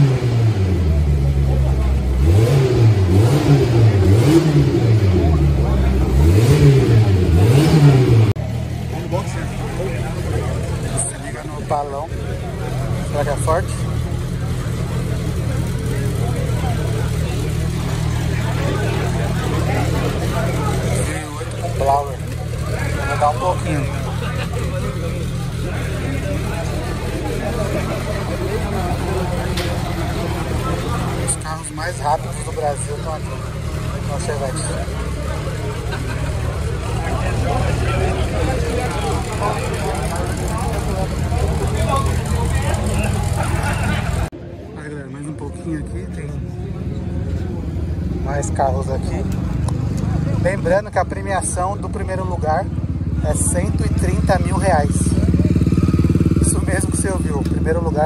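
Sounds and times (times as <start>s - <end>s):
engine idling: 0.0s - 58.0s
people chattering: 0.0s - 58.0s.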